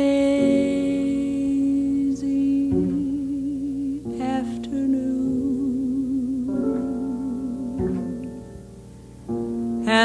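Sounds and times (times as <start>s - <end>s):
woman singing jazz ballad: 0.0s - 8.7s, 9.6s - 10.0s
soft piano: 0.0s - 10.0s.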